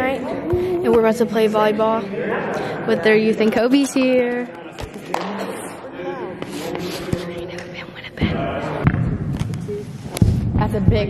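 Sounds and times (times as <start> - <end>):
voices chattering in echoing gym: 0.0 - 11.0.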